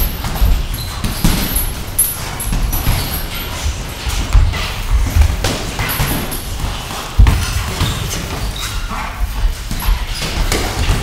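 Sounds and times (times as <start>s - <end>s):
boxing gloves landing: 0.0s - 3.3s
feet thudding on ring canvas: 0.0s - 11.0s.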